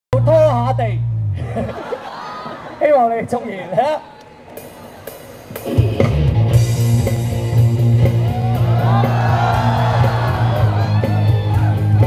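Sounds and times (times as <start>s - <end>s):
steady bass line: 0.1s - 1.7s, 5.6s - 12.0s
live rock band playing: 4.6s - 12.0s.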